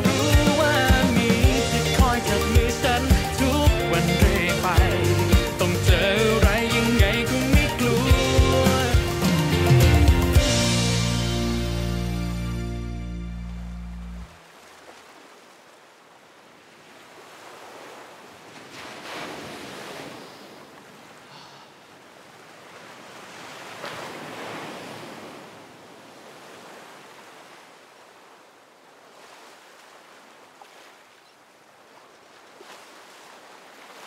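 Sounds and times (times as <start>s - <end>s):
sea waves breaking on beach: 14.2s - 34.0s.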